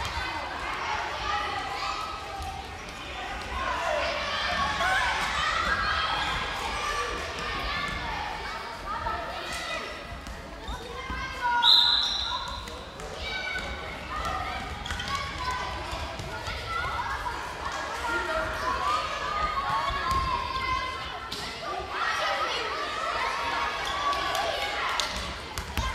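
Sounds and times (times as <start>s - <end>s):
children calling and shouting: 0.0s - 25.9s.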